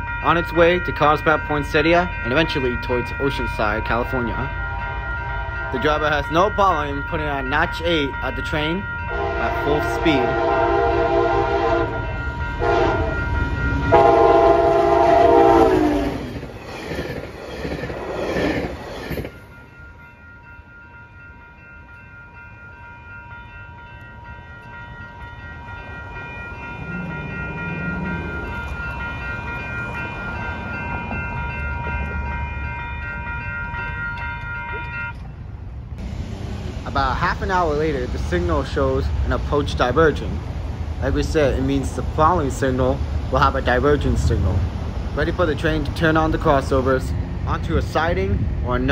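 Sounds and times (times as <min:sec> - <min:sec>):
grade crossing bell ringing: 0:00.0 - 0:35.8, 0:41.1 - 0:48.9
train passing at full throttle: 0:00.0 - 0:48.9
train horn: 0:04.7 - 0:05.8, 0:09.1 - 0:16.3.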